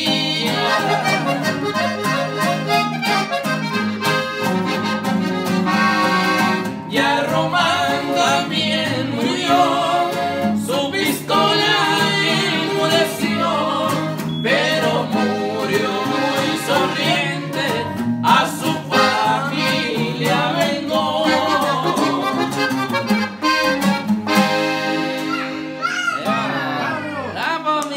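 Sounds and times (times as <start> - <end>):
man singing: 0.0 - 1.6, 6.8 - 22.8
button accordion melody: 0.0 - 26.0
strummed twelve-string guitar: 0.0 - 26.8.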